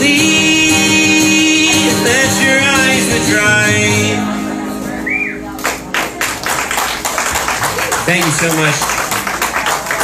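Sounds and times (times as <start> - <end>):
acoustic guitar chord ringing: 0.0 - 5.9
short whistle: 5.0 - 5.4
audience clapping: 5.6 - 10.0.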